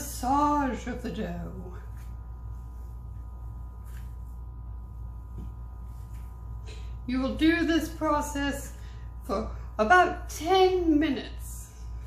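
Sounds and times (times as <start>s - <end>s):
steady low hum: 0.0s - 12.0s
soft pat: 3.1s - 4.5s, 5.1s - 6.6s.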